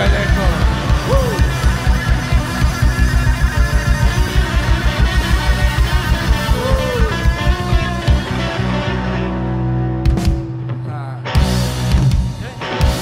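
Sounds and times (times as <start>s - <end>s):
drum kit fast beat: 0.0s - 8.6s, 11.4s - 13.0s
electric guitars and bass: 0.0s - 13.0s
guitar note bending: 0.0s - 13.0s.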